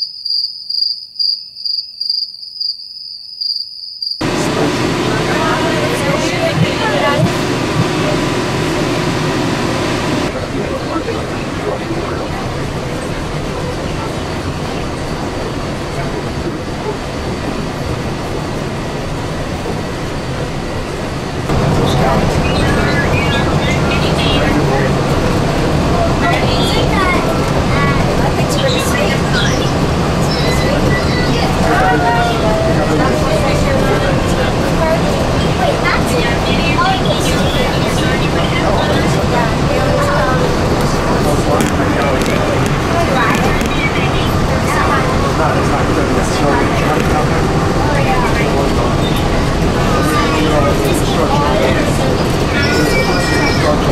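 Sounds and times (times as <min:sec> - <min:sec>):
monorail car running: 0:04.2 - 0:53.9
passengers chattering: 0:04.2 - 0:53.9.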